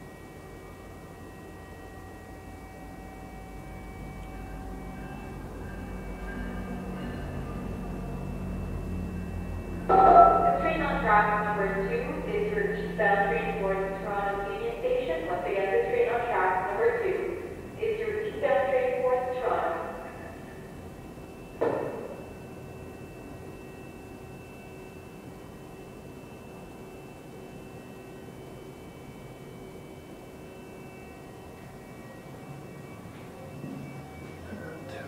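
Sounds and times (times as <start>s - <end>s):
faint thin whine: 0.0s - 35.0s
train passing hum: 0.0s - 35.0s
loudspeaker announcement: 9.9s - 20.3s
sharp thump: 21.6s - 22.2s.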